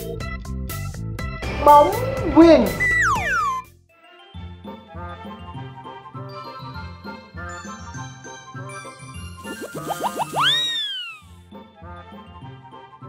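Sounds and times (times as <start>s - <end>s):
playful comedy background music: 0.0s - 13.0s
comic whistle glides: 2.7s - 3.7s, 9.4s - 11.4s.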